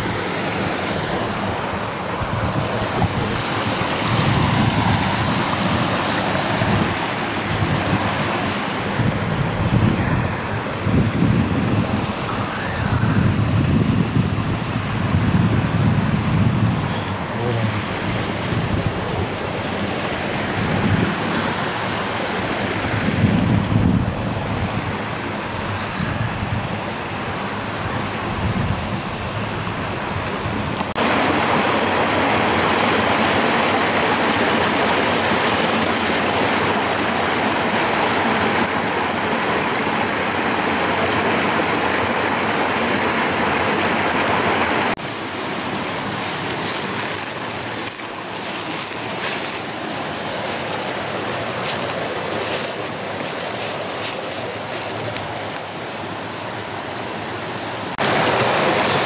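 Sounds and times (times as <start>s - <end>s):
stream running over rocks: 0.0s - 59.0s.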